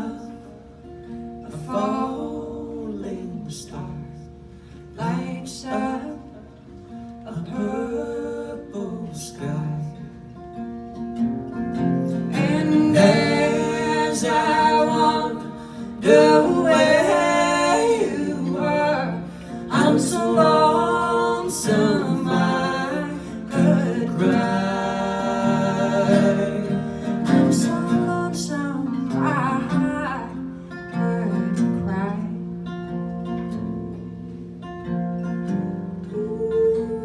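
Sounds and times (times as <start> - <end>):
woman singing country ballad: 0.0 - 0.6, 5.0 - 6.4, 12.1 - 32.9, 36.0 - 37.0
acoustic guitar: 0.0 - 37.0.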